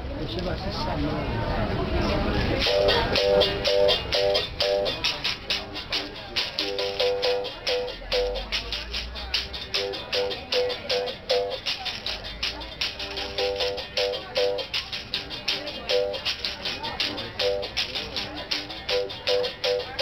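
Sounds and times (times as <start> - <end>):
berimbau stick strikes: 2.6 - 19.8
basket rattle shaking: 2.6 - 20.0.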